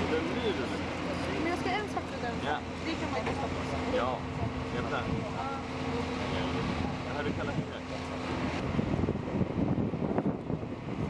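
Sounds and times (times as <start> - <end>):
fire truck engine humming: 0.0 - 11.0
wind rumble on microphone: 4.2 - 5.6, 6.4 - 11.0.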